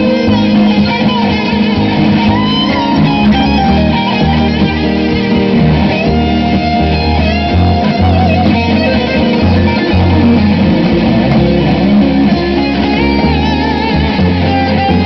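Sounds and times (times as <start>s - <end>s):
acoustic guitars playing: 0.0s - 15.0s
double bass plucking: 0.0s - 15.0s
guitar lead line: 0.0s - 15.0s.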